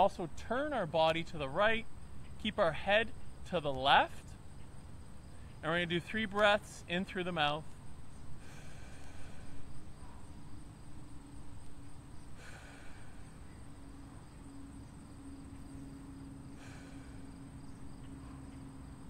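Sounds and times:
steady low hum: 0.0 - 19.0
man breathing deeply: 8.3 - 10.4, 12.2 - 14.0, 15.8 - 18.5.

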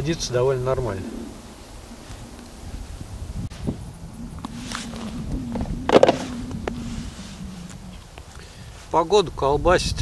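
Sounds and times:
steady low hum: 0.0 - 8.9.

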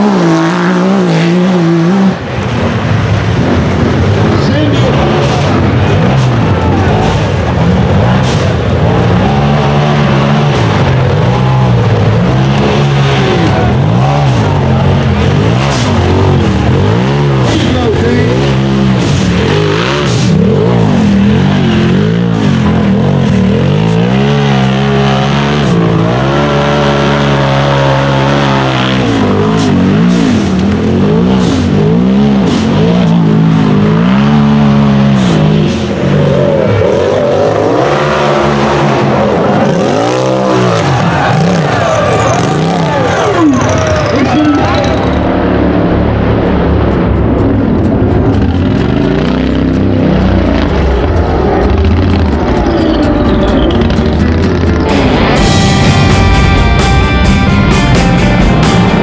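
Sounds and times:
engines revving hard: 0.0 - 59.0.

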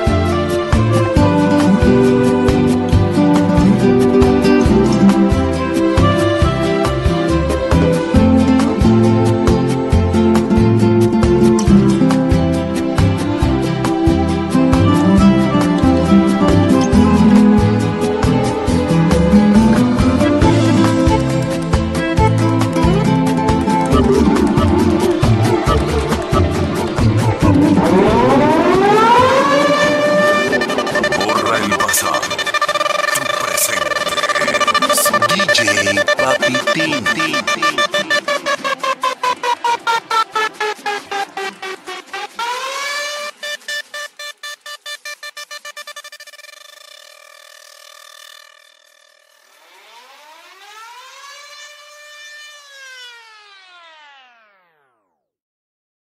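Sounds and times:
rising siren tone: 23.9 - 55.2.

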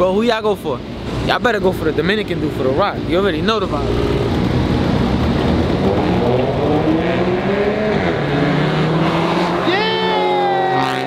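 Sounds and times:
racing car engines at full throttle: 0.3 - 11.0.

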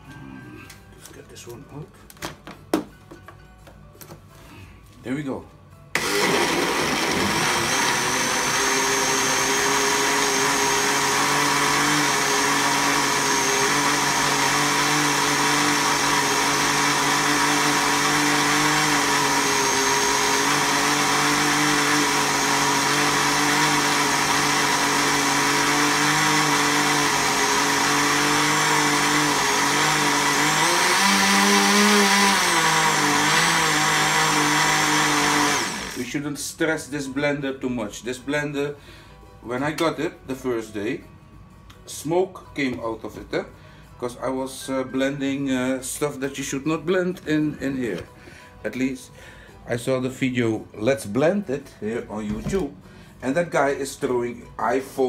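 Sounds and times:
blender motor running: 5.9 - 36.1.

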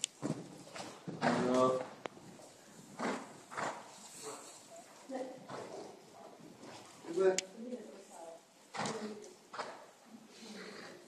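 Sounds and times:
horse hoofbeats on sand: 0.2 - 4.4.

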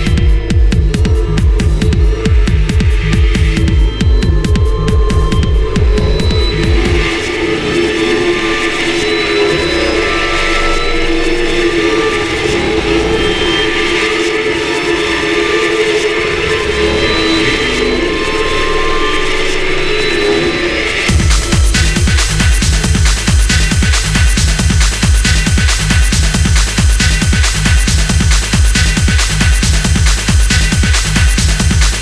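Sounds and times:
techno kick drum: 0.0 - 7.2, 21.1 - 32.0
sustained synth chords: 0.0 - 27.3.

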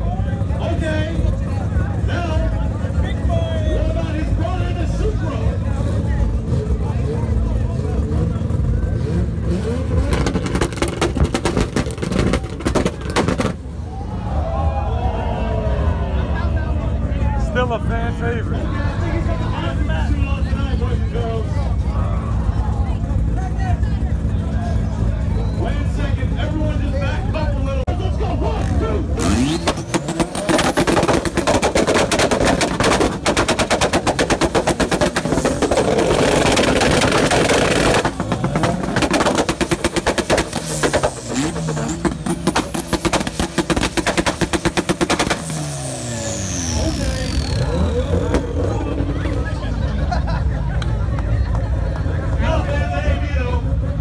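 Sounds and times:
car engine idling and revving: 0.0 - 54.0
exhaust pops and bangs: 9.8 - 13.8, 29.2 - 45.8.

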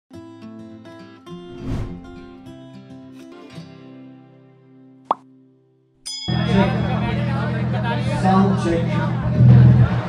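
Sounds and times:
guitar music: 0.2 - 5.7.

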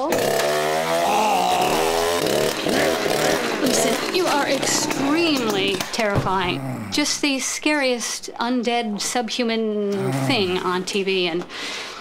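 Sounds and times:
chainsaw engine at high revs: 0.0 - 7.0.

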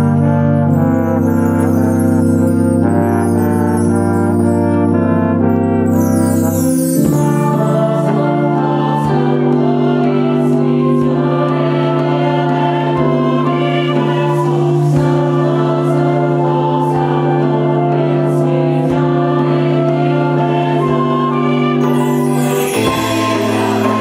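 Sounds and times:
brass and flutes: 0.0 - 24.0
mixed choir singing: 0.0 - 24.0.

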